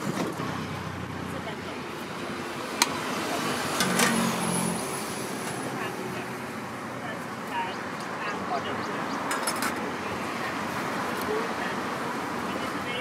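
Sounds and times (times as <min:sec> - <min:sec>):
roadside traffic noise: 0:00.0 - 0:13.0.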